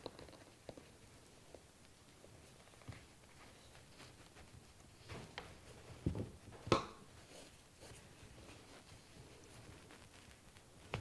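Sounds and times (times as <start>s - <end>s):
fabric rustling: 1.8s - 11.0s.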